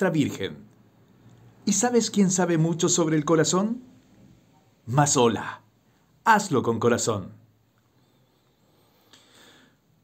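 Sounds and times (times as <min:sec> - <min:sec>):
faint breath drawn in: 0:07.9 - 0:10.0.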